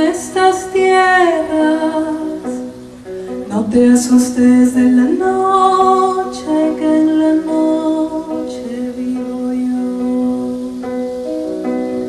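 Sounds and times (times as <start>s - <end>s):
woman singing long notes: 0.0s - 2.7s, 3.4s - 11.1s
classical guitar: 0.0s - 12.0s.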